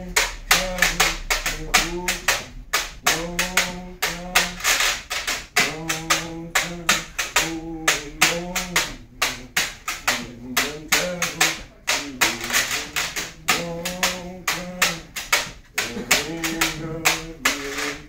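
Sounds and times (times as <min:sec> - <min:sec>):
hand-clap beat: 0:00.0 - 0:18.0
man singing unaccompanied: 0:00.0 - 0:18.0.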